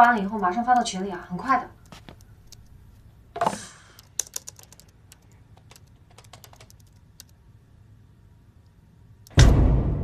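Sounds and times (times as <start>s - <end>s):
laptop keyboard typing: 3.9s - 7.4s.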